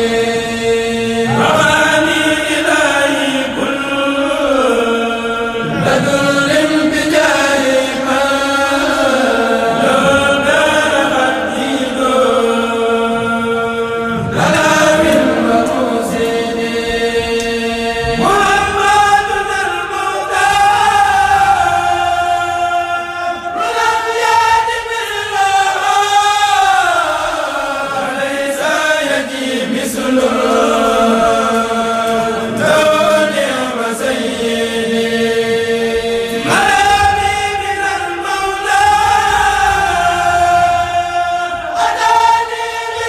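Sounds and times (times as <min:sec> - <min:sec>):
men chanting in unison: 0:00.0 - 0:43.0.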